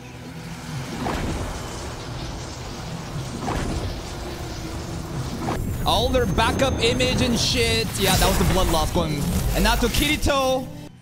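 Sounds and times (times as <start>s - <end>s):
low hum: 0.0s - 11.0s
rumbling whoosh: 0.8s - 10.3s.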